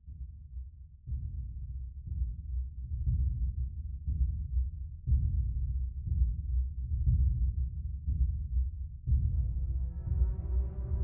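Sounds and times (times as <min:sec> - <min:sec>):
deep low cinematic pulses: 0:09.1 - 0:11.0
held low rumble: 0:09.1 - 0:11.0.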